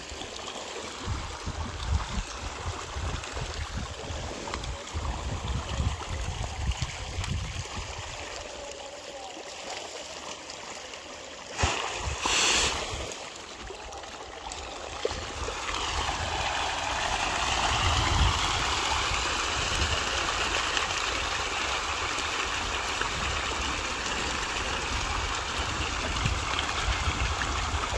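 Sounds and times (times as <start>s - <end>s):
fish splashing at water surface: 11.4s - 18.0s.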